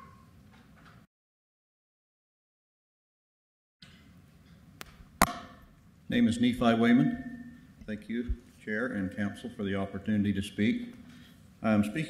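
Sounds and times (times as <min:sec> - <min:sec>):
low room hum: 0:03.8 - 0:12.0.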